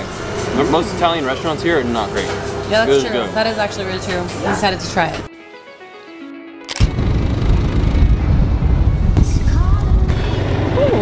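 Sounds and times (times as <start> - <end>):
motorcycle engine: 6.8 - 11.0.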